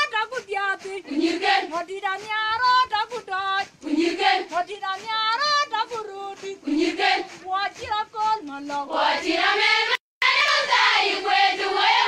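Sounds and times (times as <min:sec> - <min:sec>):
girls singing together: 0:00.0 - 0:12.0.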